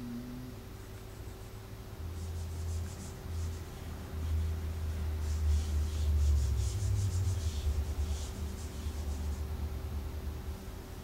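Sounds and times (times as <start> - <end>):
eraser rubbing whiteboard: 2.1 - 9.5.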